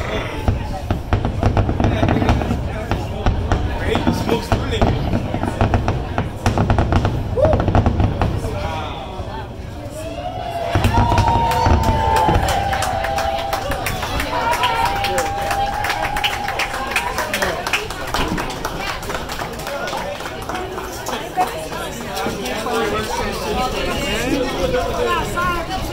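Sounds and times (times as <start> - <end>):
fireworks booming: 0.0 - 9.9, 10.6 - 16.5
fireworks crackling: 0.0 - 10.0, 10.6 - 23.7.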